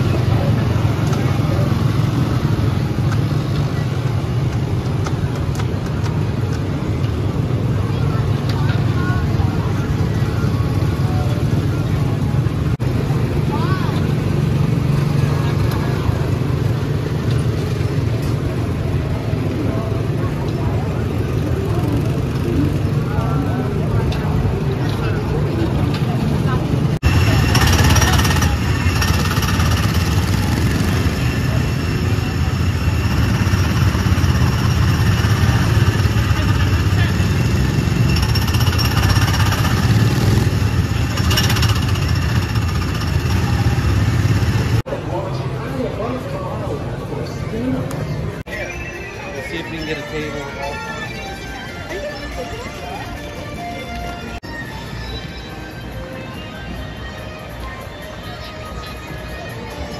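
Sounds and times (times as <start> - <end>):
small gasoline engines droning: 0.0 - 59.9.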